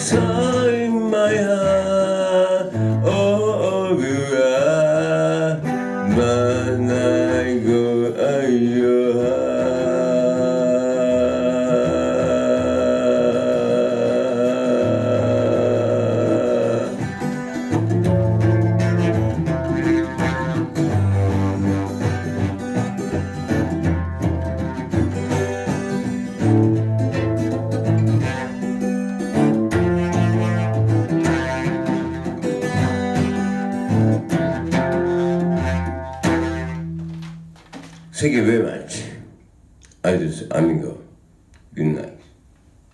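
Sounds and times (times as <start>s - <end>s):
acoustic guitar strumming: 0.0s - 39.1s
person singing a held note: 8.8s - 17.2s.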